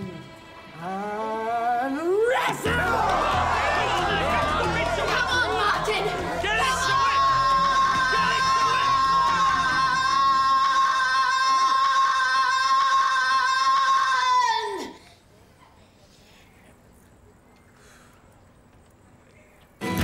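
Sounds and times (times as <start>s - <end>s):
crowd shouting and cheering: 2.2s - 15.0s.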